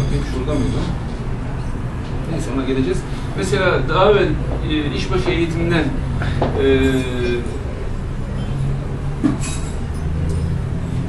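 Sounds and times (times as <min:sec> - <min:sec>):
low room hum and rumble: 0:00.0 - 0:11.0.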